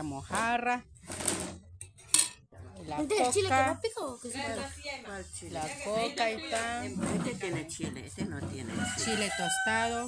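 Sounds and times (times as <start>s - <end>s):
tableware clattering: 1.8s - 2.4s.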